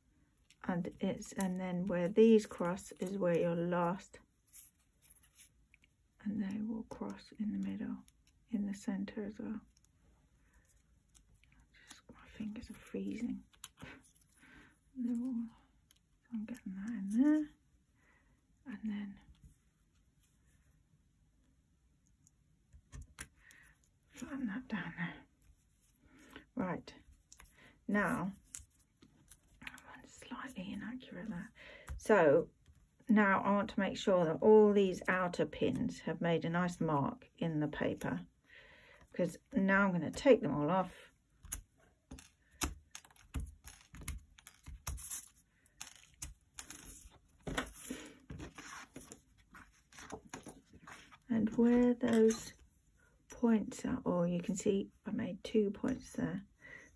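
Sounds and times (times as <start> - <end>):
paper rustle: 42.1 - 51.3.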